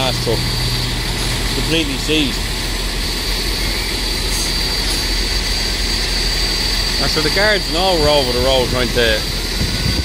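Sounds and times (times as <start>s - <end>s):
diesel truck engine idling: 0.0s - 10.0s
high-pitched whine: 0.0s - 10.0s.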